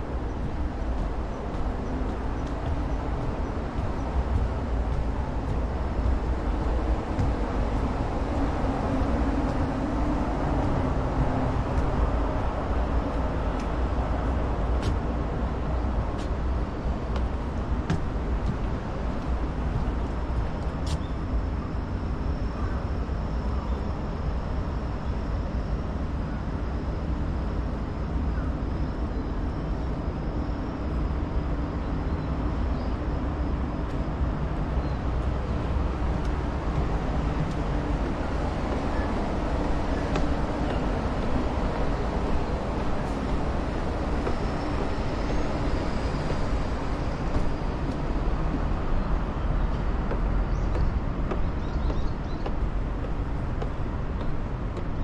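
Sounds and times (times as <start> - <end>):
distant traffic rumble: 0.0 - 21.4, 33.6 - 55.0.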